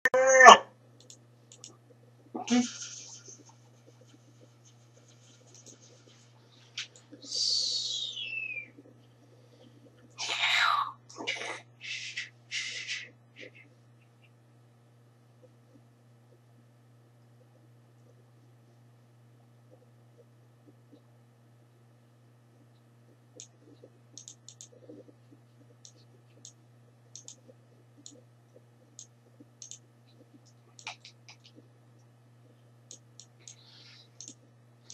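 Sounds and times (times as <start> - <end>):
low steady hum: 0.1 - 34.9
faint sharp clicks: 1.0 - 1.8, 22.6 - 31.6, 32.4 - 33.6, 34.2 - 34.9
faint ticks: 1.0 - 1.9, 3.1 - 7.8, 22.6 - 34.9.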